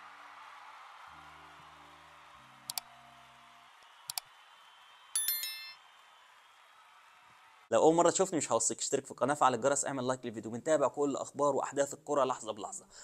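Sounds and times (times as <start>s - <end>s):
notification bell ding: 5.2s - 5.8s.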